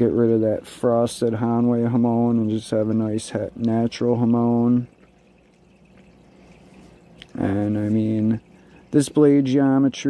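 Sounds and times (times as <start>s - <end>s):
low steady hum: 0.0s - 10.0s
soft background hiss: 0.0s - 10.0s.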